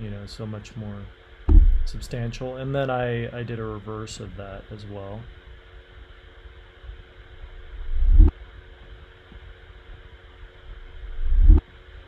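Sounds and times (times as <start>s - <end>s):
reversed hit on plastic jug: 1.5s - 1.9s.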